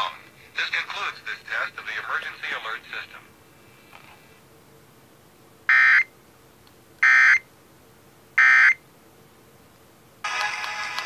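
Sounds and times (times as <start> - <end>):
radio music: 0.0 - 3.3, 10.3 - 11.0.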